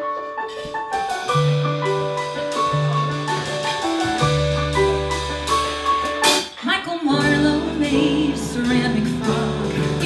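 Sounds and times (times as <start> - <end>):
pop-rock band playing: 0.5 - 10.0
woman singing: 6.6 - 10.0.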